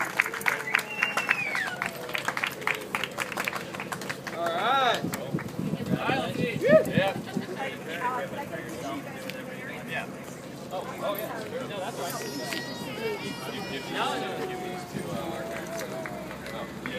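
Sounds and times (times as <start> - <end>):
hands clapping: 0.0 - 5.6, 15.4 - 16.9
people talking: 0.0 - 16.9
people laughing: 11.8 - 16.6.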